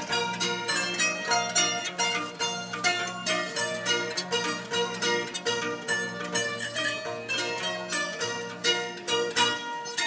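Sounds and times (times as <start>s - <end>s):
plucked zither melody: 0.0s - 10.0s.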